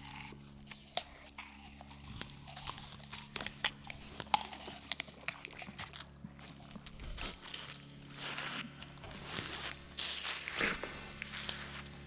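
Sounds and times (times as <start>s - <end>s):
low steady hum: 0.0s - 12.0s
people chewing crisp apples: 0.0s - 12.0s.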